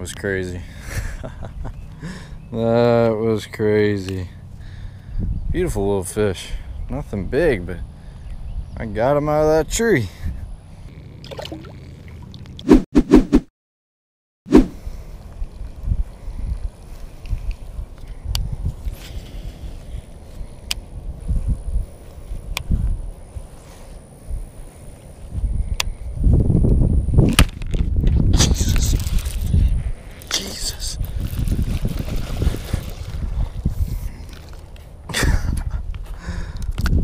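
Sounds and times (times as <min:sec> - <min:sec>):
wind buffeting microphone: 0:04.6 - 0:11.0, 0:14.8 - 0:37.0.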